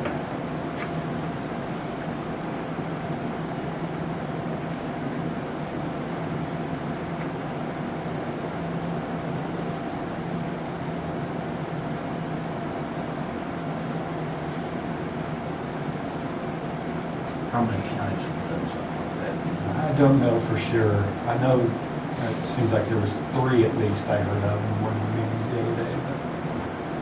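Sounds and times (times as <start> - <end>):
continuous mechanical hum: 0.0 - 27.0.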